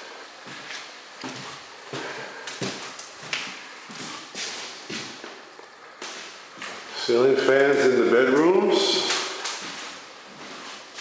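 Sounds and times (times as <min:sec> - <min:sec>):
footsteps on hardwood floor: 0:00.4 - 0:06.9, 0:09.0 - 0:11.0.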